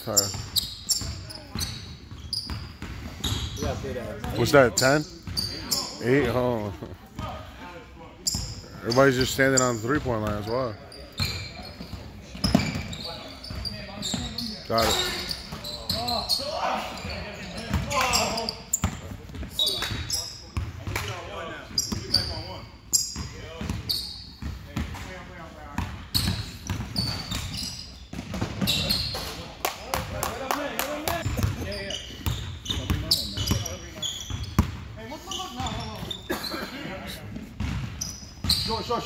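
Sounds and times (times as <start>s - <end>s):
sneaker squeaks: 0.0s - 6.4s, 8.2s - 29.6s, 31.2s - 39.0s
players' voices: 2.8s - 39.0s.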